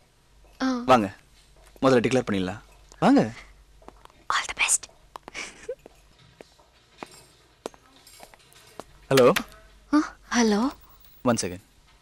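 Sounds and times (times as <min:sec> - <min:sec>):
person whispering: 0:04.3 - 0:04.8.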